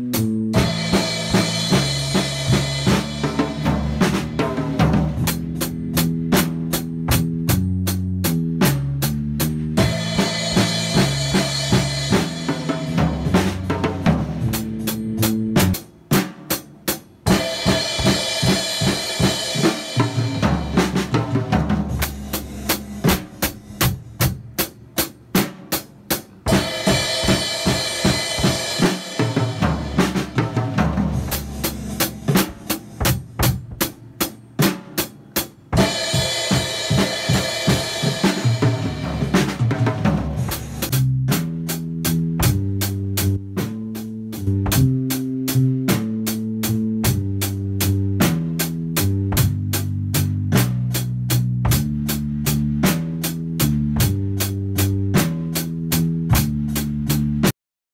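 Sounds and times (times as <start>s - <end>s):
backing music: 0.0s - 57.5s
acoustic drum kit playing: 0.0s - 57.6s
cymbals: 0.2s - 5.6s, 9.8s - 41.1s.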